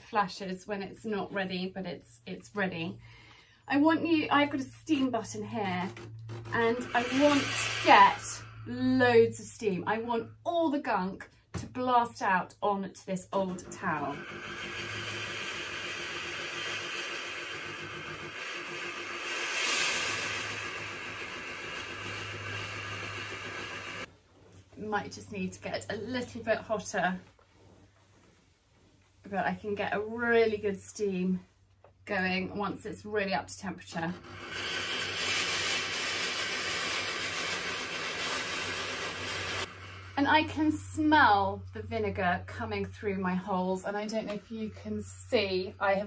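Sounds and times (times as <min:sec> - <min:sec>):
low hum: 0:05.3 - 0:10.5
steam iron hissing: 0:06.3 - 0:09.0, 0:13.6 - 0:24.1, 0:34.1 - 0:40.4.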